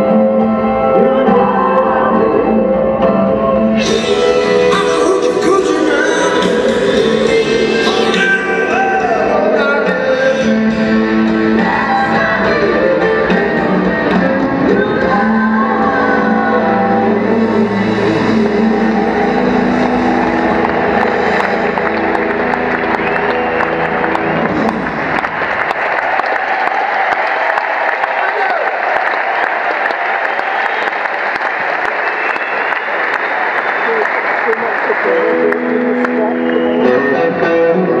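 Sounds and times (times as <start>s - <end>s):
electric guitar playing: 0.0s - 25.7s, 35.0s - 38.0s
band playing: 0.0s - 38.0s
arena crowd applauding and cheering: 3.8s - 38.0s.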